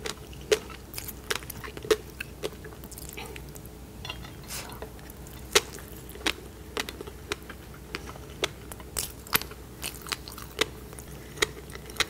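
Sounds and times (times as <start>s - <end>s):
close chewing: 0.0s - 3.7s, 4.5s - 12.0s.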